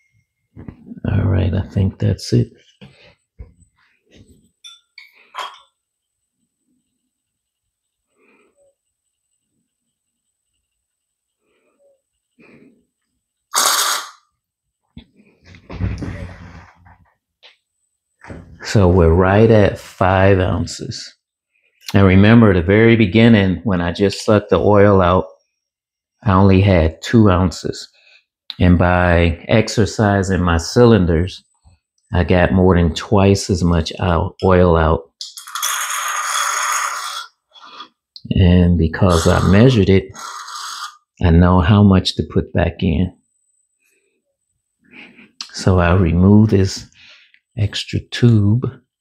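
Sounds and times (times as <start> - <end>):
short sharp hiss: 13.5 - 14.3
syringe rattling hiss: 13.5 - 14.3, 35.3 - 37.7, 39.1 - 41.1
rustling and knocking: 15.4 - 17.2.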